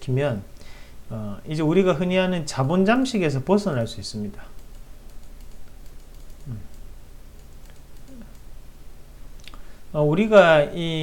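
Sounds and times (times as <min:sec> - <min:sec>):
low steady hum: 0:00.0 - 0:11.0
computer keys clicking: 0:04.5 - 0:08.5.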